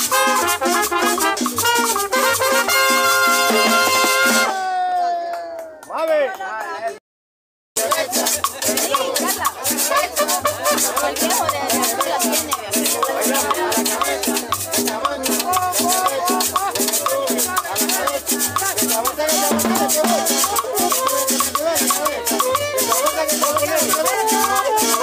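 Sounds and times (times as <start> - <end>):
live cumbia band playing: 0.0 - 5.0, 7.8 - 25.0.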